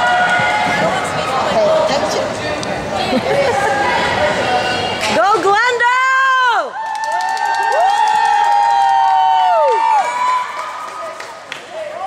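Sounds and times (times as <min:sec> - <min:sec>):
crowd screaming: 0:06.1 - 0:12.0
people clapping: 0:06.7 - 0:12.0.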